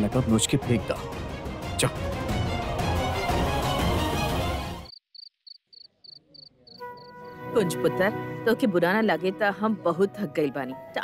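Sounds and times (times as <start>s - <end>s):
background music: 0.0s - 4.9s, 6.7s - 11.0s
crickets chirping: 4.9s - 7.4s.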